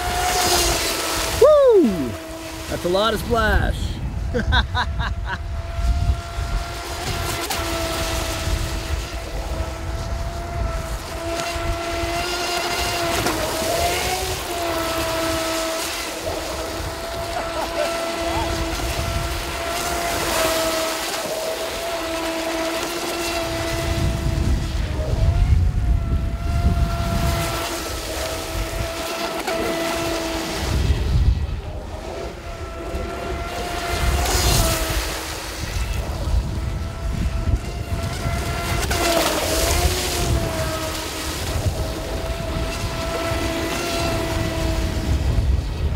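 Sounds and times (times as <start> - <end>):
boat motor and propeller whining: 0.0 - 45.9.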